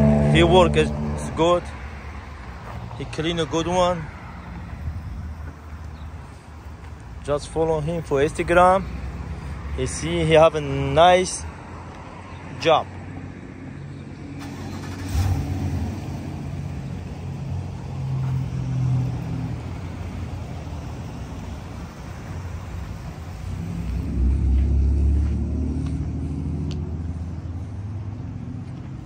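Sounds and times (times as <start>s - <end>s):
car engine rumbling: 0.0s - 11.8s, 13.9s - 29.0s.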